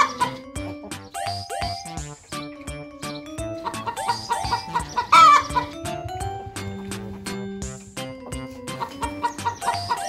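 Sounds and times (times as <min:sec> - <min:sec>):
chicken squawk: 0:00.0 - 0:00.4, 0:03.6 - 0:05.8, 0:08.8 - 0:10.0
cheerful background music: 0:00.0 - 0:10.0
chickens clucking: 0:00.0 - 0:10.0.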